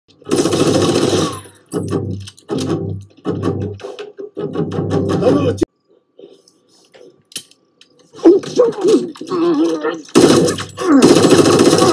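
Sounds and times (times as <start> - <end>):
automatic gunfire bursts: 10.2 - 11.9.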